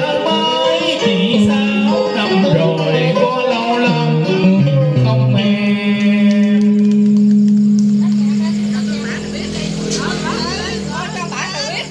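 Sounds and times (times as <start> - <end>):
karaoke backing music: 0.0 - 11.9
people talking: 7.8 - 11.9.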